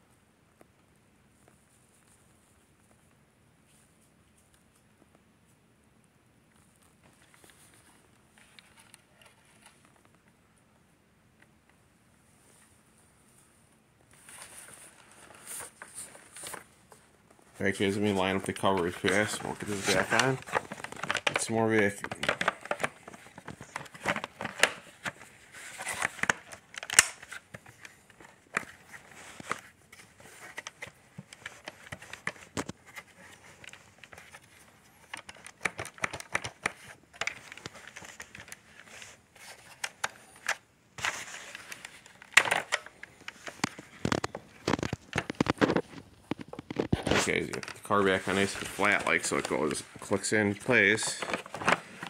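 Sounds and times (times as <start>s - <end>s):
plastic parts clicking and rattling: 29.4s - 38.6s, 41.4s - 49.8s.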